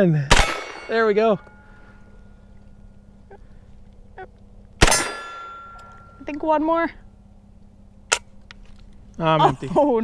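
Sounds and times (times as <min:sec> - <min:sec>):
gunshot: 0:00.3 - 0:00.9, 0:04.8 - 0:05.3
steel target ringing: 0:00.3 - 0:02.5, 0:04.8 - 0:06.3.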